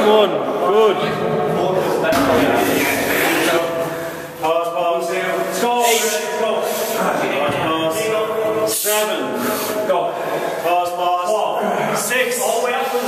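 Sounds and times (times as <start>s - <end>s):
indistinct men's voices: 0.0s - 13.0s.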